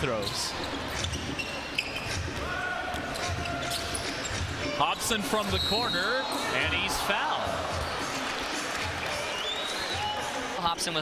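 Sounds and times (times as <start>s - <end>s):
arena crowd noise: 2.2s - 11.0s.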